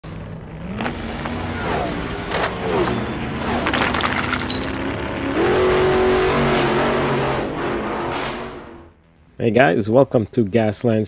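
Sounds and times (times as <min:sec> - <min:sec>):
car engine revving: 0:00.1 - 0:09.0.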